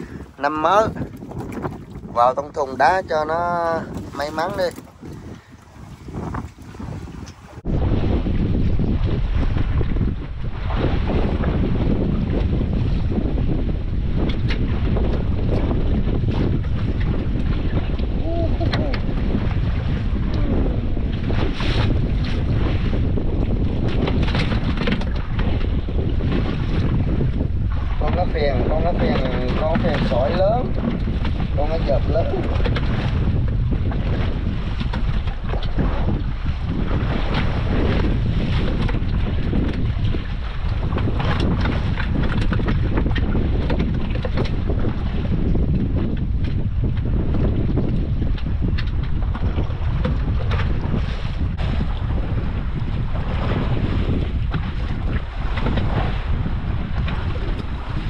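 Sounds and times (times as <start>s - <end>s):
water washing around boat: 0.0s - 58.0s
wind buffeting microphone: 0.0s - 58.0s.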